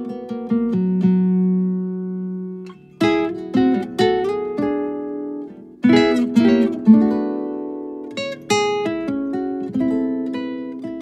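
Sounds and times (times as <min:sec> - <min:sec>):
acoustic guitar picking: 0:00.0 - 0:11.0.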